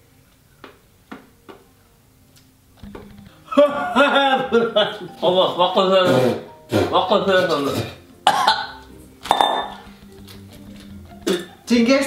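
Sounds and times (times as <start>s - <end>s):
man coughing: 7.7s - 8.7s, 11.2s - 11.6s.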